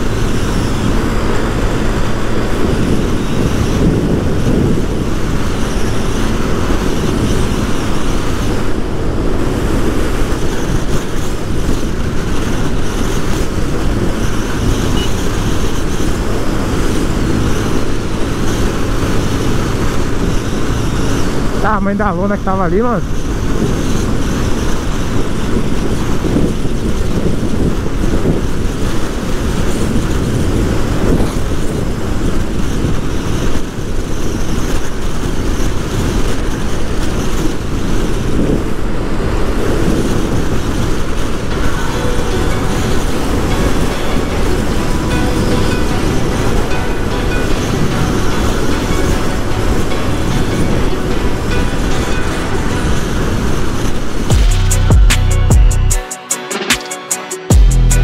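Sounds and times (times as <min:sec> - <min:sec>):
wind rush over microphone: 0:00.0 - 0:54.5
motorcycle engine: 0:00.0 - 0:58.0
road noise: 0:00.0 - 0:58.0.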